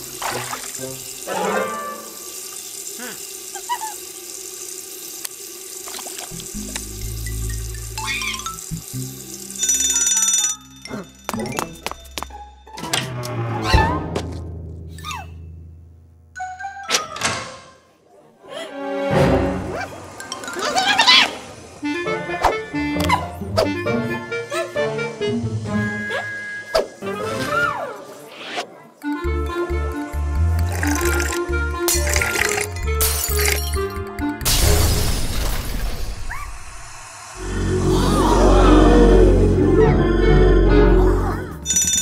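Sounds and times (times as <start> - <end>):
running sink tap: 0.0 - 10.2, 30.4 - 33.9
background music: 18.6 - 20.6, 21.8 - 27.8, 29.0 - 35.2, 37.4 - 42.0
loud buzzing tone: 36.9 - 41.0
comic sound effects: 37.4 - 41.7.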